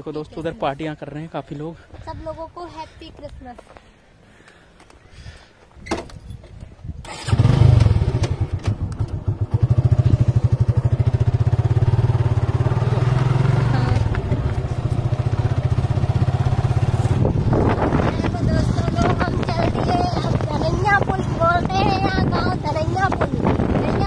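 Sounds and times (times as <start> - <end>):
motorcycle engine running: 7.2 - 24.0.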